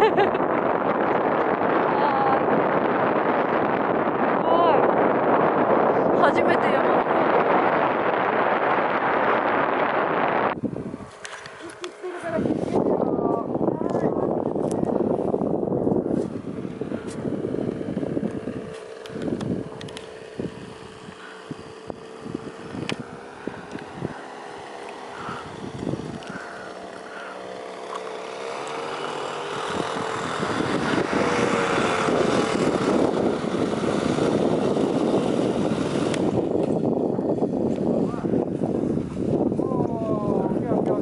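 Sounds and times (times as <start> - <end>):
paramotor engine droning: 0.0 - 41.0.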